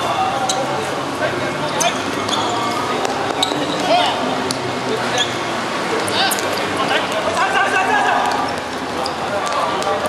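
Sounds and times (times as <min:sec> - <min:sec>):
players shouting: 0:05.1 - 0:10.0.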